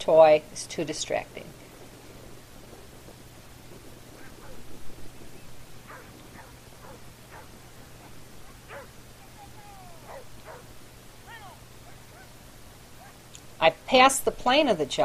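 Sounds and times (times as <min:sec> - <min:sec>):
dog yipping and whining: 0:05.9 - 0:09.0, 0:10.0 - 0:10.7.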